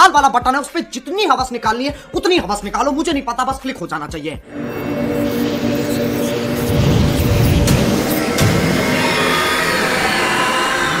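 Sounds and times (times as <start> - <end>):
music: 0.0 - 11.0
cinematic sound effects roar: 4.5 - 11.0
heavy low hits: 6.4 - 9.4.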